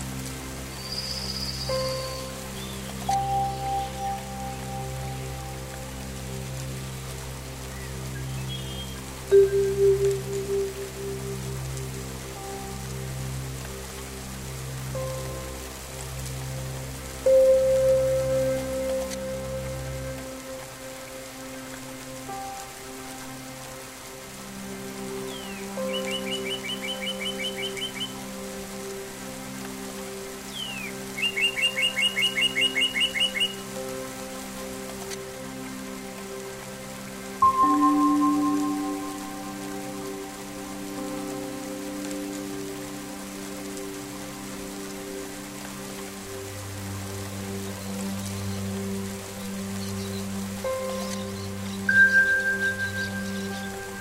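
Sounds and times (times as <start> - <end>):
steady rain: 0.0 - 54.0
synthesizer drone: 1.6 - 30.1, 31.7 - 54.0
soft struck bell tones: 37.4 - 40.0, 51.9 - 54.0.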